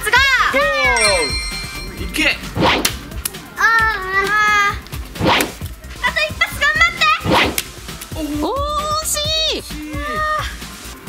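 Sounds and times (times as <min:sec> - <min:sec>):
throwing star swish: 0:02.5 - 0:03.1, 0:05.1 - 0:05.6, 0:07.2 - 0:07.7.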